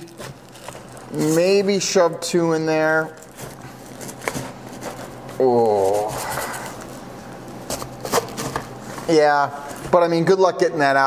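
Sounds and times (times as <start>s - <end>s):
fabric pouch rustling and scraping: 3.1s - 6.8s.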